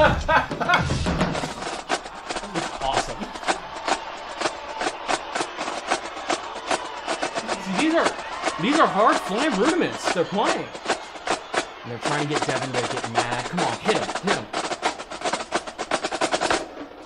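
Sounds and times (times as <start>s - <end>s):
snare and tenor drums: 0.0s - 17.0s.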